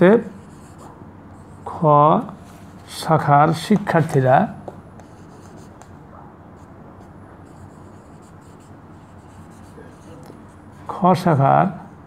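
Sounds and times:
marker scratching on whiteboard: 0:00.2 - 0:01.8, 0:02.4 - 0:06.0, 0:06.6 - 0:11.3.

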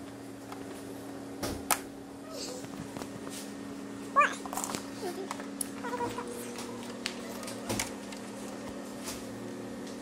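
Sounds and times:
steady hum: 0:00.0 - 0:10.0.

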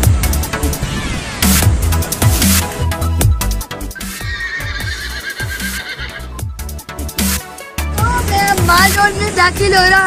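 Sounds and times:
horse whinny sound effect: 0:04.0 - 0:06.3.

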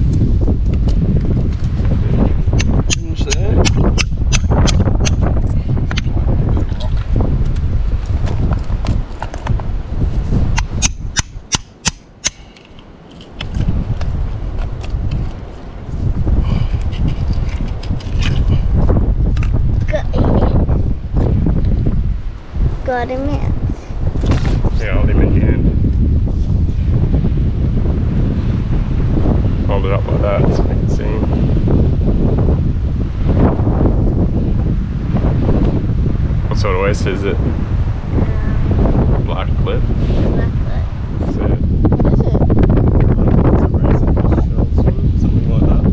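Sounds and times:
wind rumble on microphone: 0:00.0 - 0:45.9
hammer tapping oyster shells: 0:10.6 - 0:12.5.

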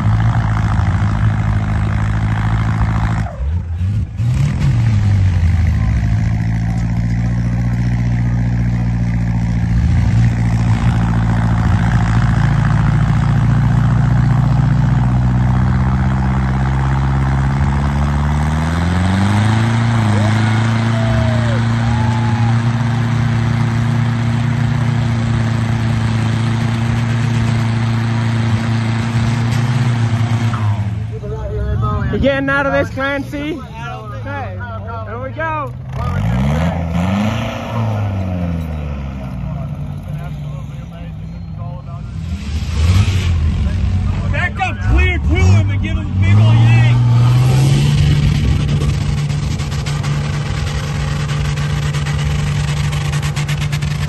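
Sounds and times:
truck engine running hard: 0:00.0 - 0:54.0.

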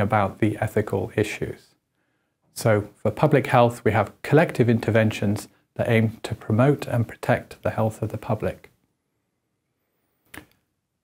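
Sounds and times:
soft breath: 0:01.9 - 0:02.5.

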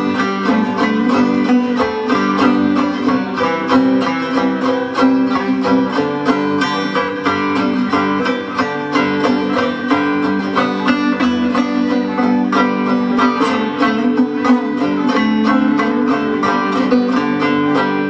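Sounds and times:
second banjo part: 0:00.0 - 0:18.0
zither-banjo picked notes: 0:00.0 - 0:18.0.

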